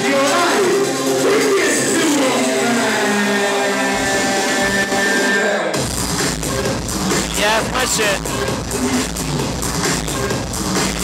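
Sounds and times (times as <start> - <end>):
electronic dance music: 0.0 - 11.0.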